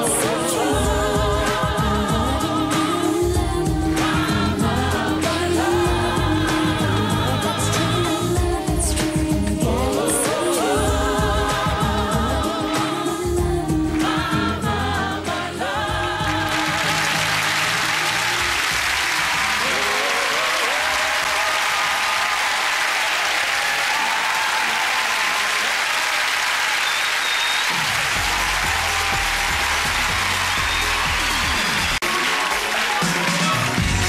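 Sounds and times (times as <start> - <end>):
gospel choir singing: 0.0 - 22.4
audience applauding and cheering: 0.0 - 34.0.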